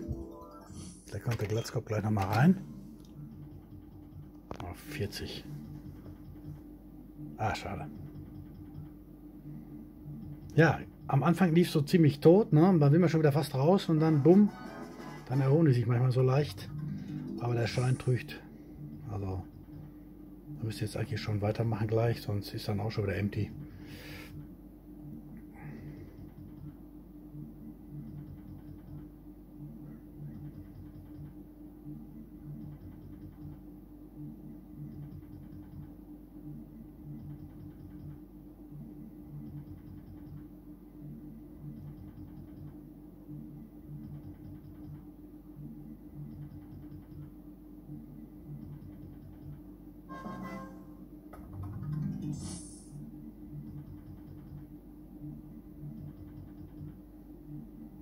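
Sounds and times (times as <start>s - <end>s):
slot machine game music: 0.0s - 1.7s, 13.9s - 18.2s, 50.1s - 52.9s.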